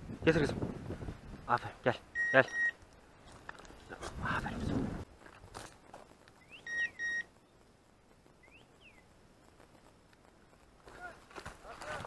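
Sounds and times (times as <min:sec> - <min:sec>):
brush rustling: 0:02.8 - 0:12.0
short high electronic beeps: 0:06.5 - 0:07.3
faint sweeping chirps: 0:08.4 - 0:09.1.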